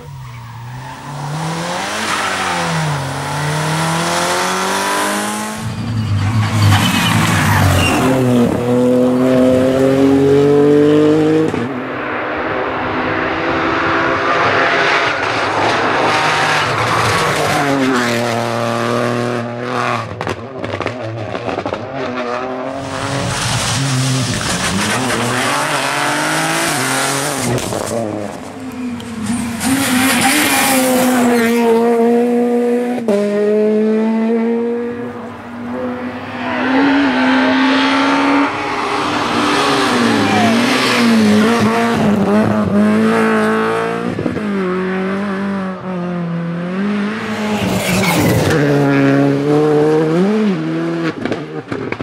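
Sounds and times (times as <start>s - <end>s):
rally cars passing at speed: 0.0s - 52.0s.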